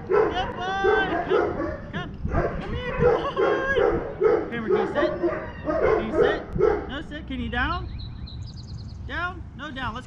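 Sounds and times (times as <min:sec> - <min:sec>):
dog barking: 0:00.0 - 0:07.0.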